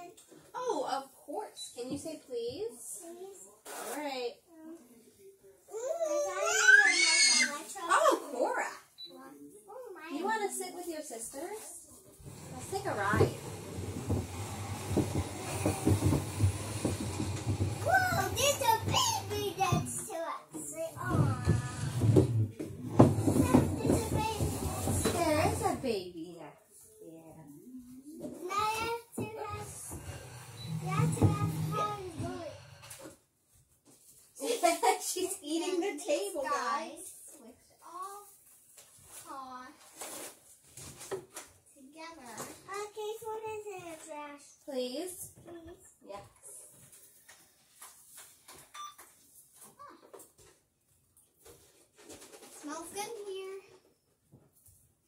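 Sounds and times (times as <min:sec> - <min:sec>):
young child making high sounds: 0:05.7 - 0:07.7
soft knocks and bumps: 0:12.3 - 0:20.2, 0:21.0 - 0:25.8, 0:28.2 - 0:32.7.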